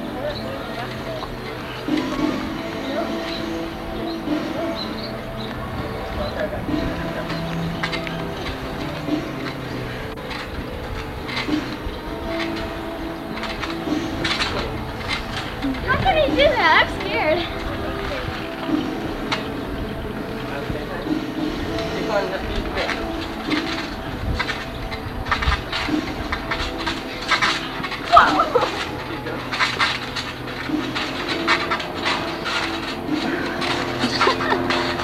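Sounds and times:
voices: 0:00.0 - 0:35.0.

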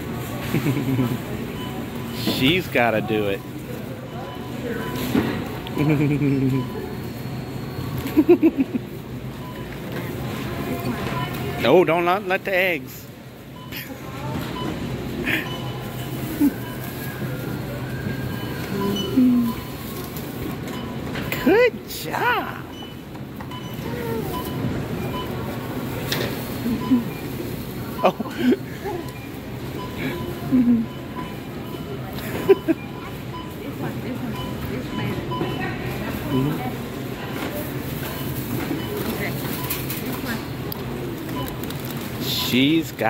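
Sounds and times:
faint indistinct voices: 0:00.0 - 0:08.1, 0:13.1 - 0:43.0
store noise hum: 0:00.0 - 0:43.0.

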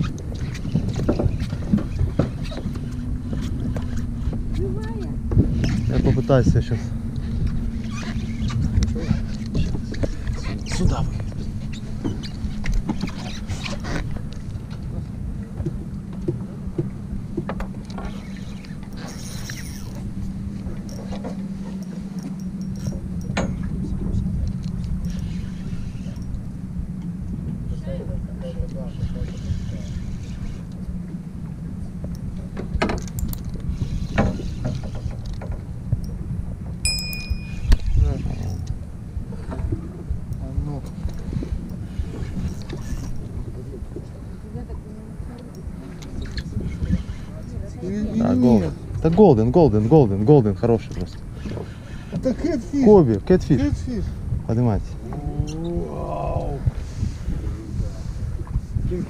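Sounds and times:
steady low hum: 0:00.0 - 0:59.0
spinning reel cranking: 0:18.0 - 0:20.0, 0:41.0 - 0:43.2.

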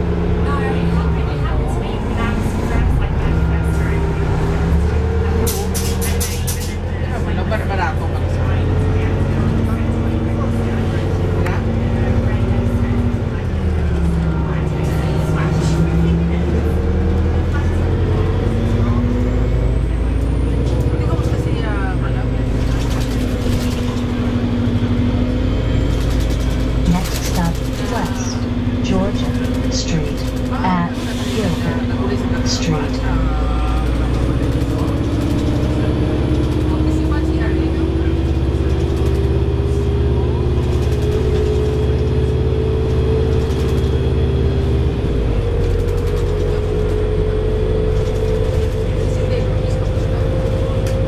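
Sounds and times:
bus engine hum: 0:00.0 - 0:51.0
road noise: 0:00.0 - 0:51.0.

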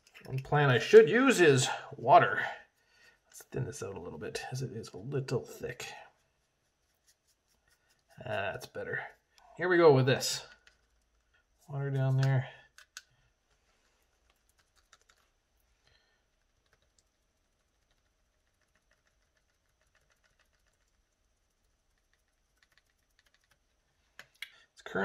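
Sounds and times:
sponge dabbing paint: 0:00.0 - 0:24.2.

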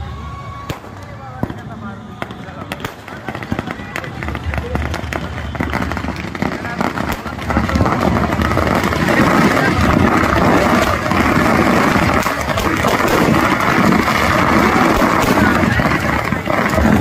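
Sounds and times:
crowd voices: 0:00.0 - 0:17.0
firecrackers crackling: 0:00.0 - 0:17.0.

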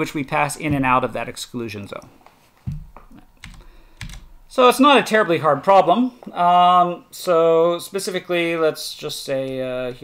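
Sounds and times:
computer keys clicking: 0:03.4 - 0:04.3.

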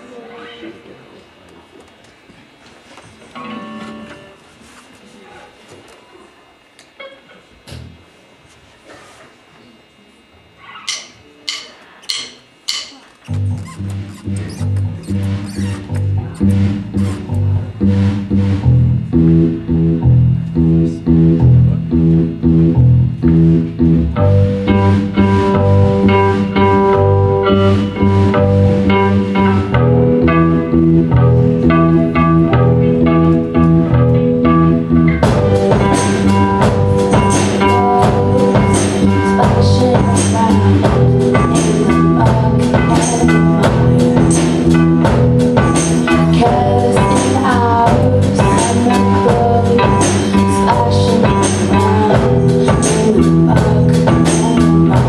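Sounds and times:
higher guitar or keyboard notes: 0:03.4 - 0:04.5, 0:12.1 - 0:55.0
rock band playing: 0:11.5 - 0:55.0.

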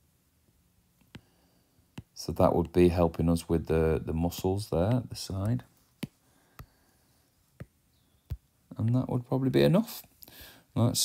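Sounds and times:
stylus tapping glass screen: 0:07.6 - 0:09.0.

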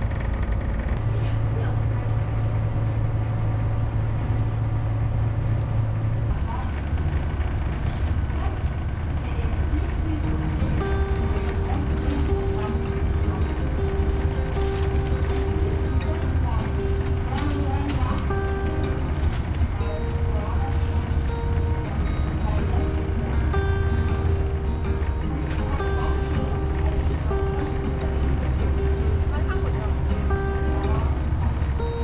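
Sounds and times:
boat engine droning: 0:00.0 - 0:32.0
held musical tones: 0:09.5 - 0:32.0.

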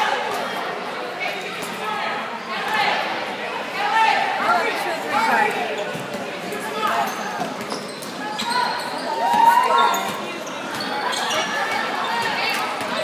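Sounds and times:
spectators' voices and shouts: 0:00.0 - 0:13.0.

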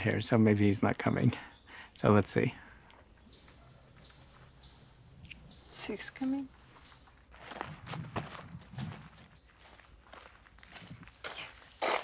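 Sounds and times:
high-pitched insect whine: 0:00.1 - 0:12.0
short high chirping calls: 0:03.2 - 0:07.2.

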